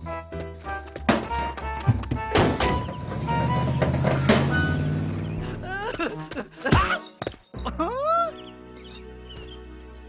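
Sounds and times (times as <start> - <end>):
cartoon background music: 0.0 - 10.0
sharp thuds: 1.1 - 4.8
van engine driving off: 2.3 - 5.7.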